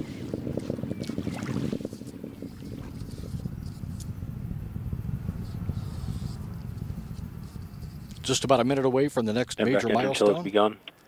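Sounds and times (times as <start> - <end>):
rocket engines rumbling: 1.7 - 10.2.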